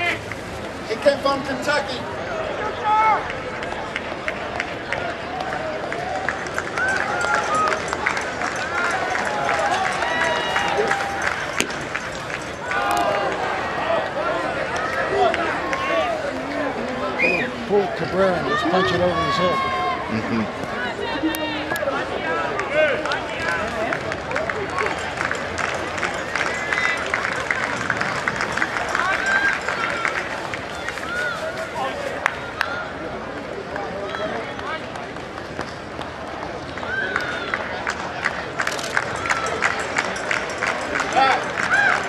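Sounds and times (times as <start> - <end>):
crowd chatter: 0.0 - 42.0
people clapping: 2.9 - 17.0, 21.3 - 32.8, 33.7 - 42.0.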